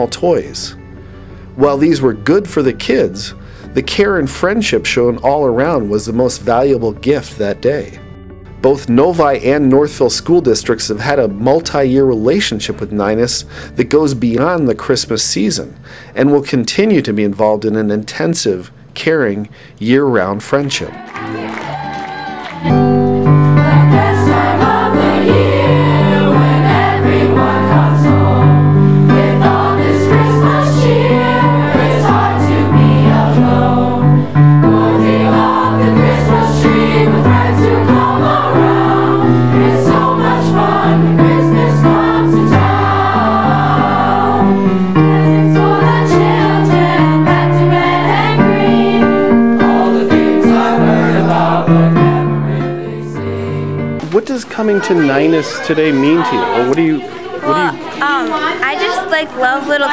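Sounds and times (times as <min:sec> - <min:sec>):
youth choir singing: 0:20.7 - 0:53.6, 0:54.6 - 0:59.9
instrumental accompaniment: 0:21.0 - 0:58.0.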